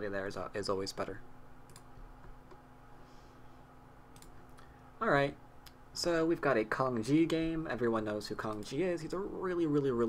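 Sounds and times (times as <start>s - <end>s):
steady low hum: 0.0s - 10.0s
faint computer mouse clicks: 1.7s - 2.6s, 4.1s - 4.7s.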